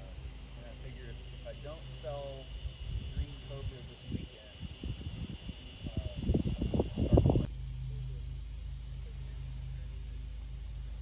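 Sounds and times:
high insect drone: 0.0s - 11.0s
low steady hum: 0.0s - 11.0s.

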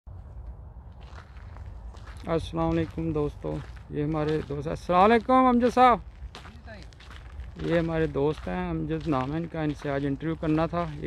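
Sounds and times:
footsteps on gravel: 0.2s - 11.0s.

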